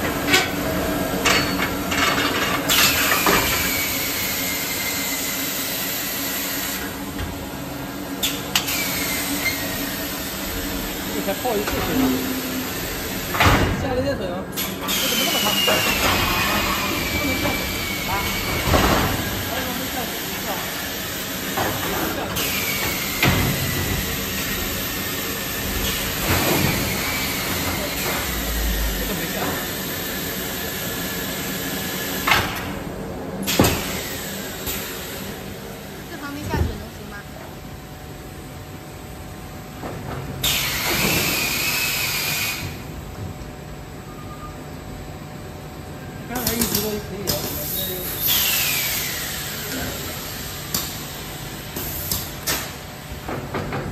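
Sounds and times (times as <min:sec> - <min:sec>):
machine hiss: 0:47.5 - 0:51.1.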